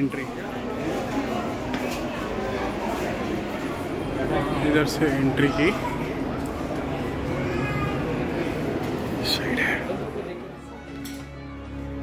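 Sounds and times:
faint distant voices: 0:00.0 - 0:11.9.

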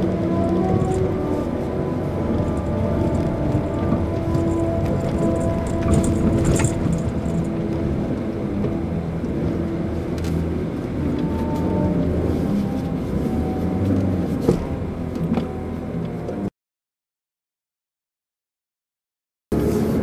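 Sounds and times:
car engine and tyre drone: 0:00.0 - 0:16.5, 0:19.5 - 0:20.0.

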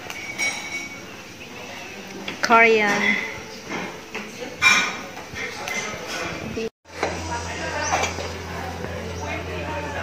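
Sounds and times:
diners chattering: 0:01.1 - 0:10.0.

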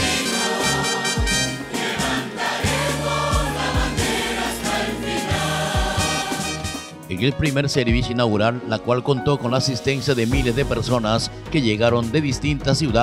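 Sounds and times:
band with drums: 0:00.0 - 0:06.9
choir singing worship song: 0:00.0 - 0:06.9.

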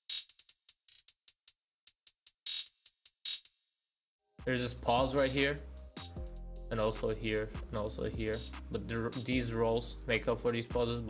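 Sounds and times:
electronic hi-hat ticks: 0:07.6 - 0:10.6.

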